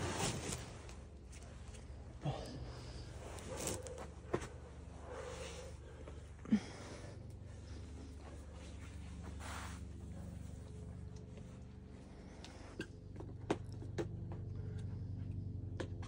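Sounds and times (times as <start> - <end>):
hard breathing: 1.3 - 13.3.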